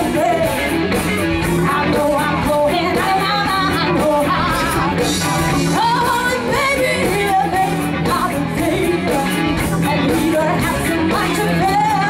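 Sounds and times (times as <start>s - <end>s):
live rock band playing: 0.0s - 12.0s
woman singing lead: 0.0s - 12.0s.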